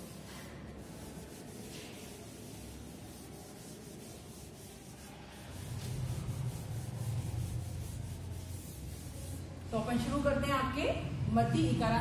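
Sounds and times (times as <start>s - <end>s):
cloth rubbing on chalkboard: 0.0s - 9.7s.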